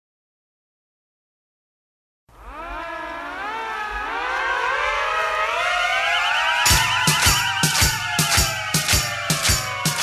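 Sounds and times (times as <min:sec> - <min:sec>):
overlapping siren wails: 0:02.3 - 0:10.0.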